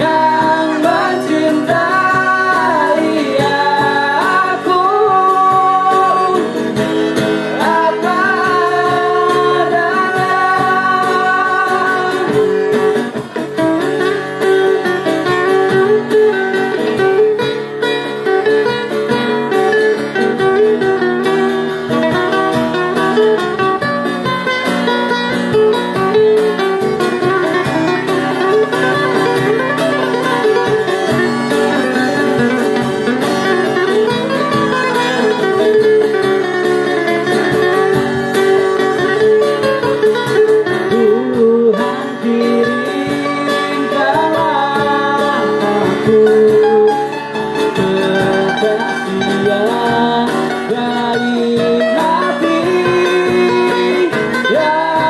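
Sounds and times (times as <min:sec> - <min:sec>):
acoustic guitars strumming: 0:00.0 - 0:55.0
violin melody: 0:26.0 - 0:40.7.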